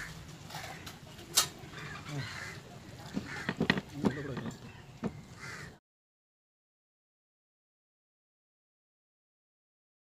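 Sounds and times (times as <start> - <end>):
bird cawing: 0.0 - 1.0, 1.7 - 5.8
low voices: 0.5 - 5.7.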